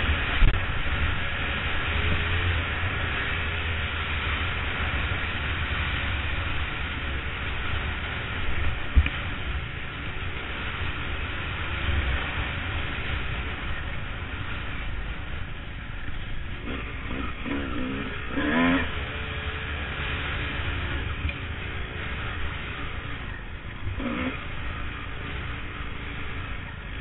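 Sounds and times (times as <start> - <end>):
dirt bike engine running: 0.0 - 27.0.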